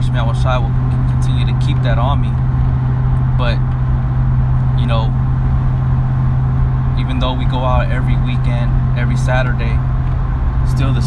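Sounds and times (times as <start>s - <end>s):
car engine and road rumble: 0.0s - 11.0s
deep hum: 0.0s - 11.0s.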